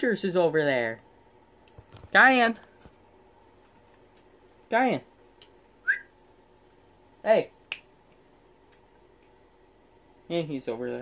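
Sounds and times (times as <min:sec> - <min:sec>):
whistle-like chirp: 0:05.8 - 0:06.1.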